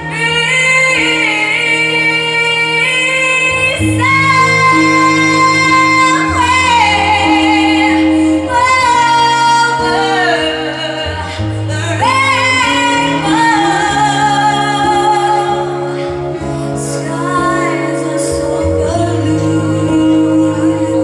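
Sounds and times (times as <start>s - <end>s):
woman singing: 0.0s - 21.0s.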